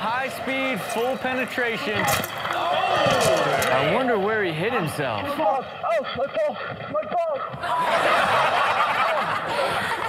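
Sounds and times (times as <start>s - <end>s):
burst of laughter: 7.6s - 10.0s.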